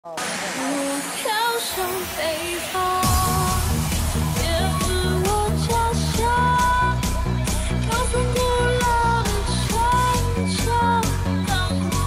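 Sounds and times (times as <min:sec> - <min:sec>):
pop singer with light backing: 0:00.0 - 0:12.0
bass: 0:03.0 - 0:12.0.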